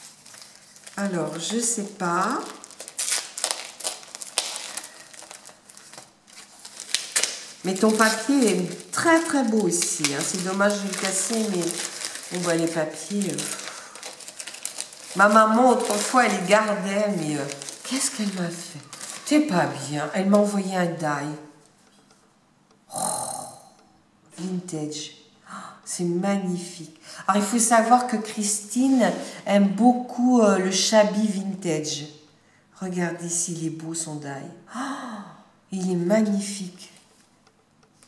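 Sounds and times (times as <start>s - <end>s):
sharp paper crackle: 0.0s - 19.8s
wrapping paper crinkling: 0.0s - 20.3s.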